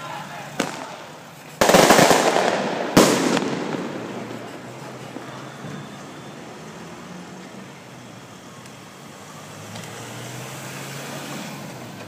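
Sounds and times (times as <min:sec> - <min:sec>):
sharp crack: 0:00.5 - 0:05.3
loud explosive bangs: 0:00.6 - 0:06.0.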